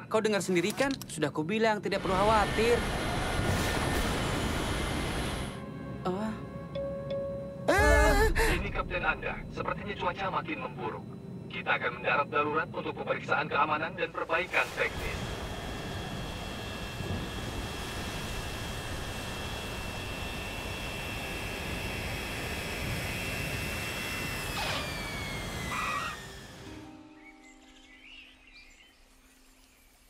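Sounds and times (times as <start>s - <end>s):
jet engine whine: 1.9s - 6.0s, 7.5s - 26.8s.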